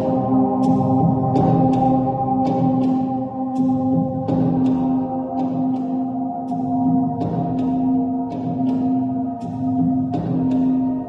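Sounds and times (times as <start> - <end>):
singing bowls struck with mallets: 0.0 - 11.0.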